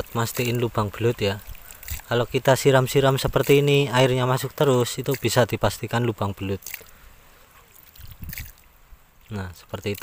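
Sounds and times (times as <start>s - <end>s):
water draining into mud hole: 0.0s - 7.0s, 7.7s - 8.7s, 9.3s - 10.0s.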